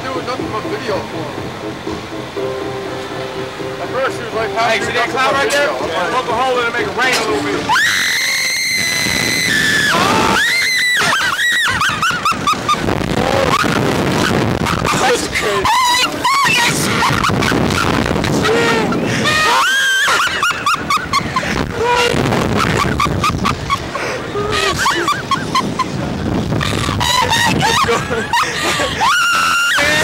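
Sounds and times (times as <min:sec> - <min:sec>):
people screaming and shrieking: 0:07.0 - 0:30.0.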